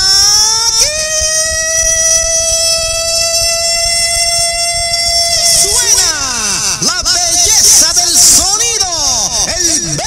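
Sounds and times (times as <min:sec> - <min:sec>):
siren high tone: 0:00.0 - 0:10.0.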